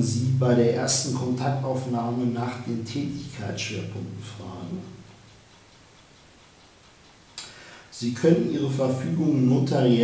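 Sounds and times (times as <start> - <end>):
sharp breath in: 7.4 - 7.9.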